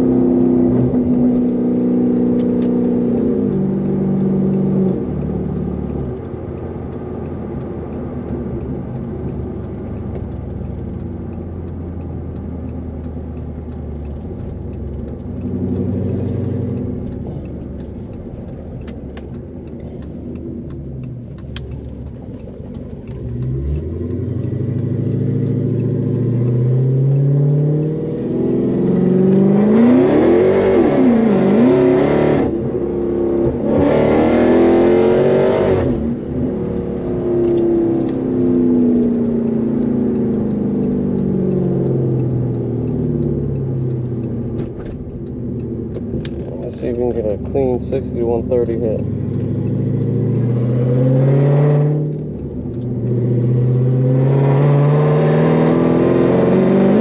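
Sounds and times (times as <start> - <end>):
car engine accelerating hard: 0.0 - 57.0.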